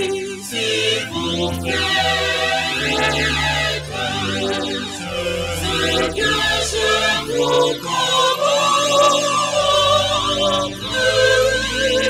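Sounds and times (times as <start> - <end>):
church choir singing held notes: 0.0 - 12.0.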